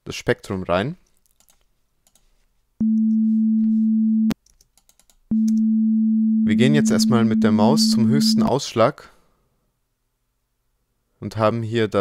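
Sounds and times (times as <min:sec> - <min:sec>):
mouse and keyboard clicks: 0:01.3 - 0:02.3
pure sine tone: 0:02.8 - 0:04.4, 0:05.3 - 0:08.5.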